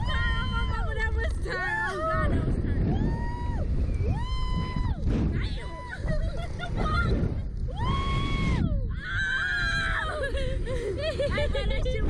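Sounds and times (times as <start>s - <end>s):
low rumble: 0.0s - 12.0s
riders screaming: 1.7s - 10.4s.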